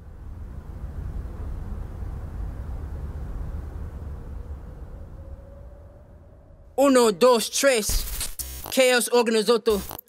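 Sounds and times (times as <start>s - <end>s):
low steady rumble: 0.0s - 6.8s
faint steady hum: 0.0s - 7.4s.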